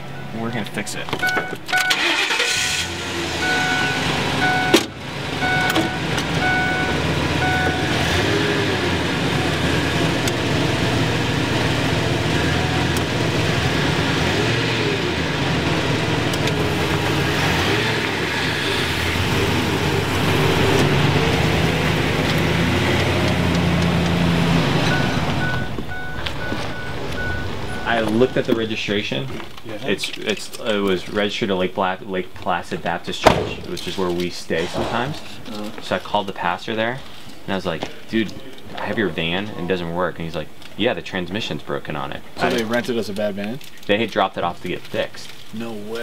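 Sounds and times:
van engine running: 0:01.4 - 0:28.6
door warning chime: 0:03.4 - 0:08.0, 0:24.8 - 0:28.5.

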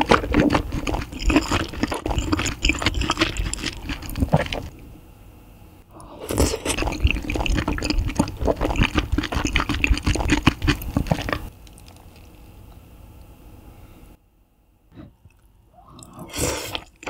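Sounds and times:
wet chewing mouth sounds: 0:00.0 - 0:04.7, 0:06.2 - 0:12.4.

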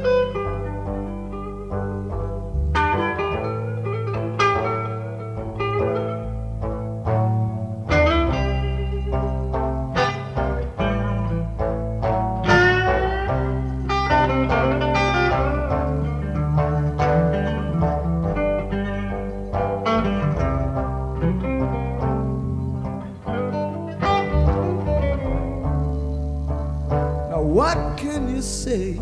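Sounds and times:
bass guitar: 0:00.0 - 0:29.0
electric guitar lead lines: 0:00.0 - 0:29.0.

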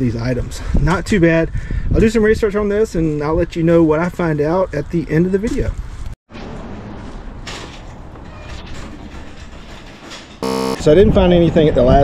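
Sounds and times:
short electronic buzz: 0:10.4 - 0:10.8.

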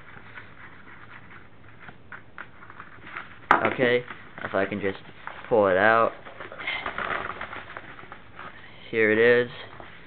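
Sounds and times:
paper mailer rustling: 0:02.0 - 0:10.0.

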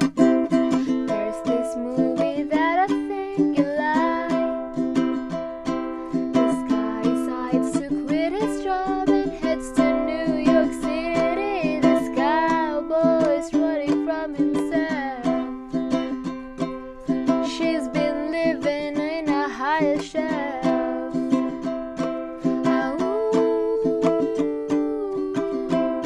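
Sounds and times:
girl singing: 0:00.0 - 0:26.0
ukulele strumming: 0:00.0 - 0:26.0.

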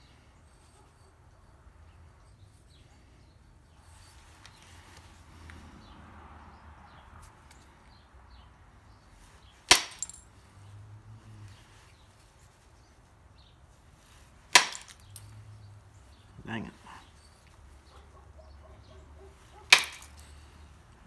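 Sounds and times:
antler striking stone cracks: 0:09.7 - 0:10.2, 0:14.5 - 0:15.0, 0:19.7 - 0:20.1.

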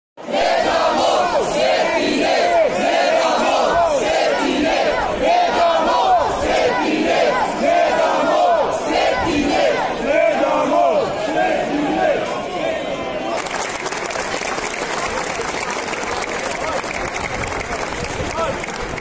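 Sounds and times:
crowd yelling and shouting: 0:00.2 - 0:13.5.

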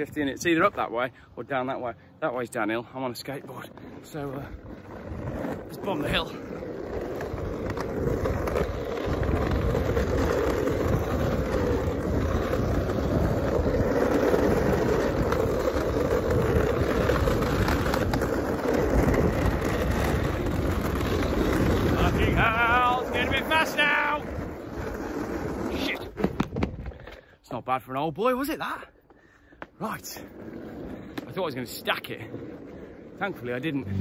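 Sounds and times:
skateboard wheels rolling on tarmac: 0:00.0 - 0:34.0.

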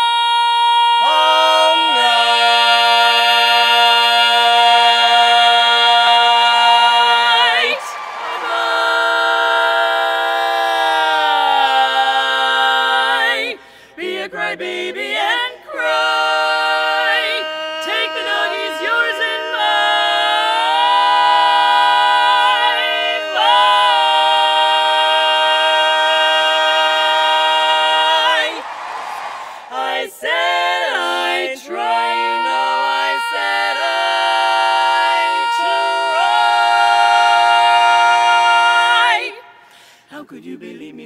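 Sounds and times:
women's barbershop quartet singing: 0:00.0 - 0:41.0.

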